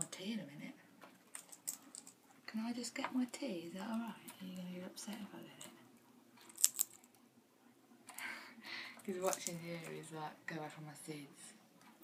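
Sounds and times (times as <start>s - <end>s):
parrot cracking seeds: 1.2s - 2.4s, 6.4s - 7.2s, 9.0s - 10.0s.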